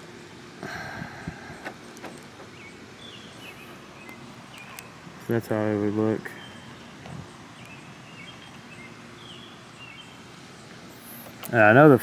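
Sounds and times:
faint bird chirps: 0:05.8 - 0:11.6.

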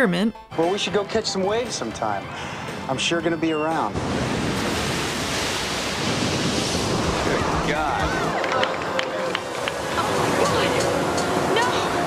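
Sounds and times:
ocean waves breaking: 0:01.8 - 0:12.0.

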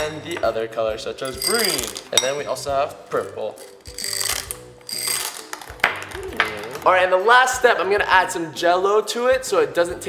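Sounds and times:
background music: 0:00.0 - 0:10.0
glassy clink: 0:01.2 - 0:02.5, 0:03.6 - 0:05.6
candies pouring into glass bowl: 0:03.6 - 0:05.8.

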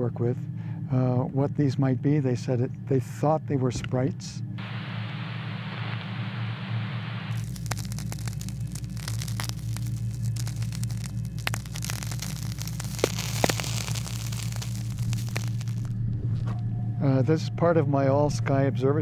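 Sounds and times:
steady low hum: 0:00.0 - 0:19.0
radio static crackling and clicks: 0:04.6 - 0:15.9.

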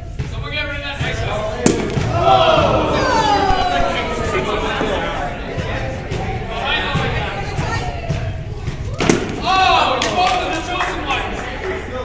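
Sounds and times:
chatter of people: 0:00.0 - 0:12.0
sharp impact: 0:01.6 - 0:05.5.

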